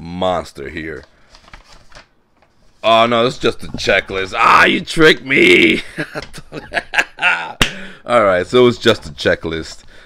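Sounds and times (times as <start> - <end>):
paper rustling and crinkling: 0.9 - 4.1.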